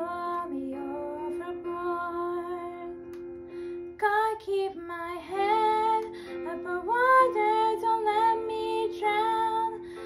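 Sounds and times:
girl singing: 0.0s - 3.2s, 3.9s - 10.0s.

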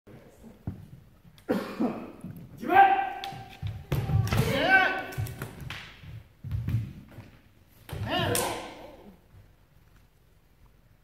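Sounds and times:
person shouting: 4.1s - 5.2s, 7.9s - 9.2s.

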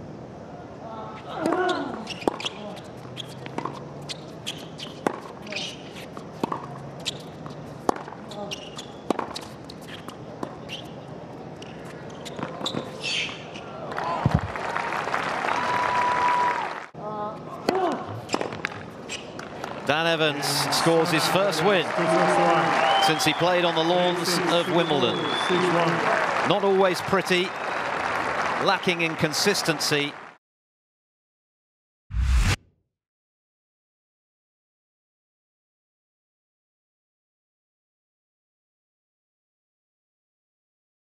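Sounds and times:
ball bouncing: 3.2s - 5.4s, 6.4s - 9.6s
racket striking tennis ball: 3.2s - 10.8s
crowd applauding and cheering: 13.9s - 16.9s, 19.9s - 30.4s.

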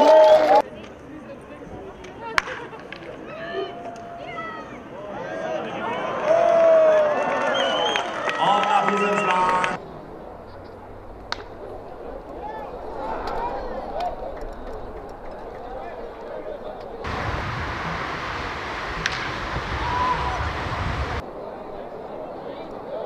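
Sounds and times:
spectators and players chattering: 0.0s - 6.3s, 8.4s - 17.1s, 21.2s - 23.0s
bat hitting ball: 18.8s - 19.8s.

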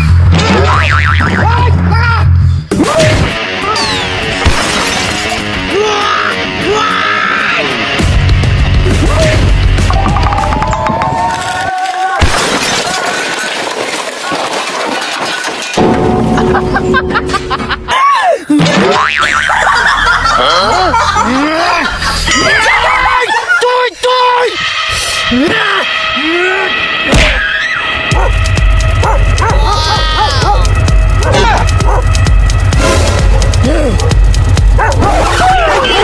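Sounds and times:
background music: 0.0s - 11.4s, 24.2s - 36.0s
cartoon wobbling boing: 0.3s - 1.6s
comedy crash: 12.2s - 20.4s.

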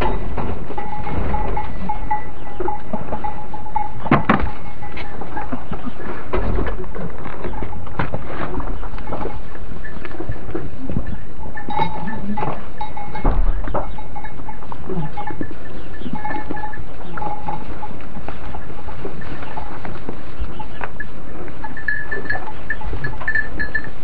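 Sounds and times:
hooves knocking and straw rustling: 0.0s - 24.0s
goats bleating: 10.3s - 18.1s.

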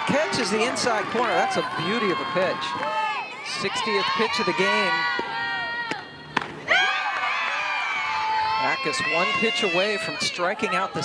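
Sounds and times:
bat hitting ball crack: 5.9s - 6.6s.

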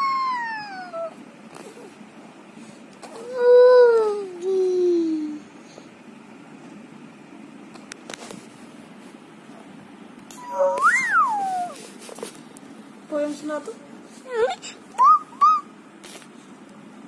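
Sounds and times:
child squealing: 0.0s - 1.2s, 10.4s - 11.8s, 14.3s - 15.7s
child's chirpy squeaks: 10.4s - 11.8s, 14.3s - 15.7s.

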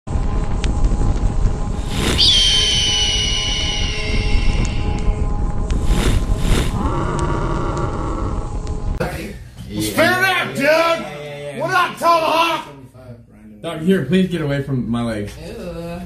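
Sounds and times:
fire-like rumble: 0.1s - 9.0s
low held tone: 1.5s - 9.0s
quick whooshes: 1.7s - 6.8s
long high cry: 2.2s - 5.2s.

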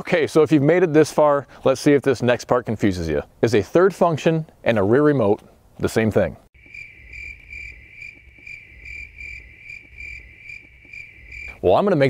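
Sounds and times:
crickets chirping: 6.6s - 11.8s.

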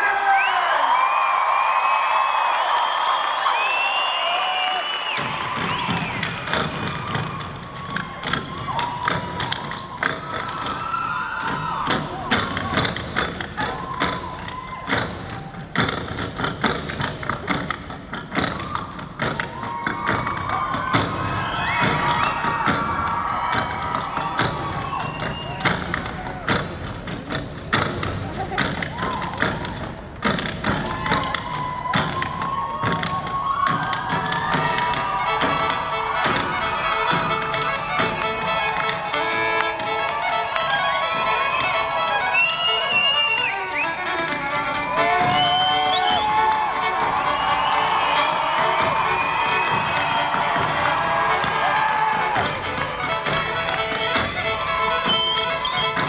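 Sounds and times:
crowd cheering and whooping: 0.0s - 27.4s, 28.0s - 56.0s
feet tapping and stamping on stage: 4.9s - 56.0s
fiddle music: 34.6s - 56.0s.

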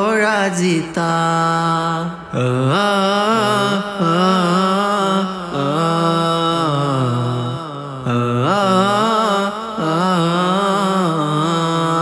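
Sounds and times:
male voices singing: 0.0s - 12.0s.

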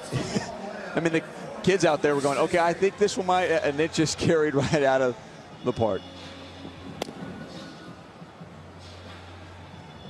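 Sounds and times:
background music: 0.0s - 10.0s
ballpark crowd ambience: 0.0s - 10.0s.

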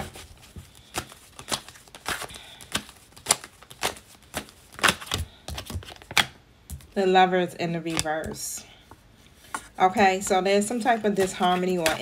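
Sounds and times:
cards being shuffled: 0.0s - 6.9s, 7.9s - 8.4s, 10.8s - 12.0s.

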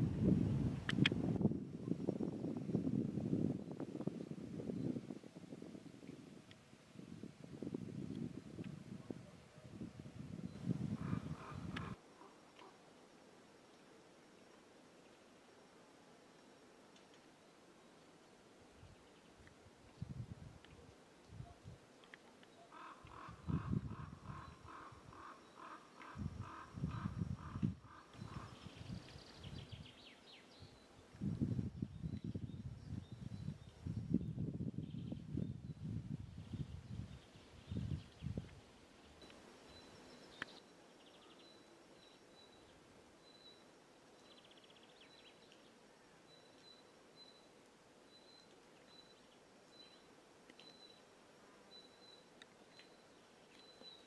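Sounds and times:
wind gusting on microphone: 0.0s - 12.0s, 19.9s - 20.7s, 23.1s - 25.3s, 26.0s - 29.9s, 31.2s - 39.2s
bird rapid repeated call: 11.0s - 12.4s
faint high bird chirps: 39.1s - 47.5s, 48.1s - 51.1s, 51.7s - 54.0s.

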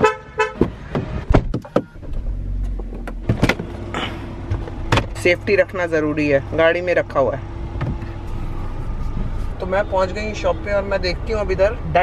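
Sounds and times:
car door clicks and knocks: 0.5s - 3.8s, 4.4s - 5.2s, 7.8s - 8.0s
steady low hum: 2.0s - 11.5s.

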